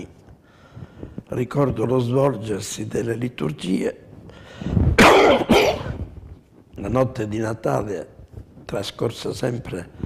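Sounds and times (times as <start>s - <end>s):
elderly man coughing: 5.0s - 6.1s.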